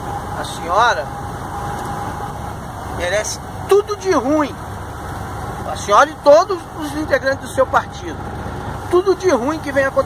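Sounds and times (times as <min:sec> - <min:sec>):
faint steady whine: 0:00.0 - 0:10.0
truck engine and road noise: 0:00.0 - 0:10.0.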